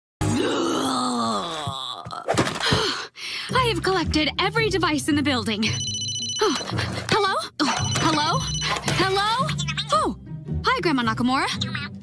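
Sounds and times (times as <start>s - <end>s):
person moaning: 0.2s - 2.3s.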